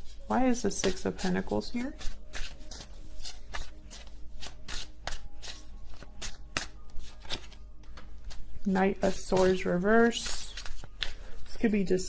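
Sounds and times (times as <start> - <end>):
cards being shuffled: 0.8 - 11.7.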